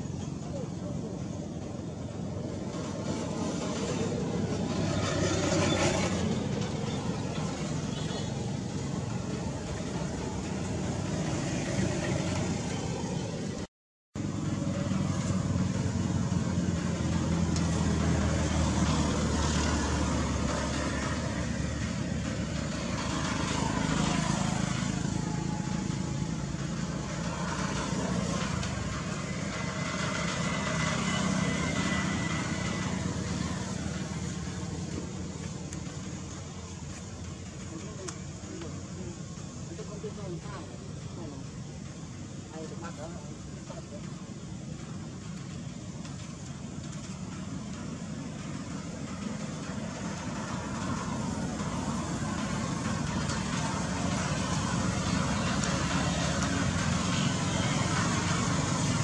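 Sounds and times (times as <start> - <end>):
vehicle engine humming: 0.0 - 59.0.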